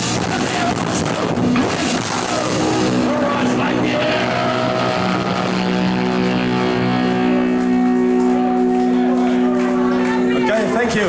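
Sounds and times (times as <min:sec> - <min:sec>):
electric guitars holding a chord: 0:00.0 - 0:11.0.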